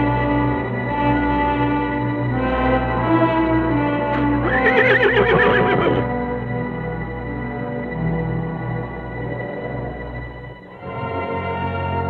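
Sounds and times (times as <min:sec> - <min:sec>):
orchestral music: 0:00.0 - 0:12.0
horse whinnying: 0:04.4 - 0:06.1.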